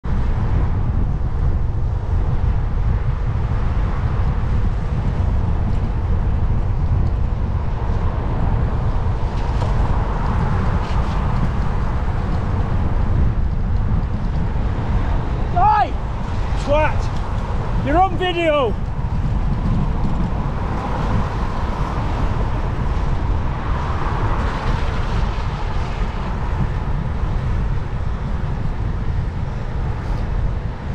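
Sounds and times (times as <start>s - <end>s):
wind rumble on microphone: 0.0s - 30.9s
road and traffic hiss: 0.1s - 30.9s
car passing close: 19.1s - 28.1s.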